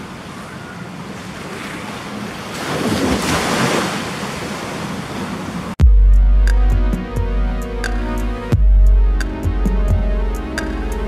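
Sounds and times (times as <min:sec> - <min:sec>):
small sea waves washing ashore: 0:00.0 - 0:05.8.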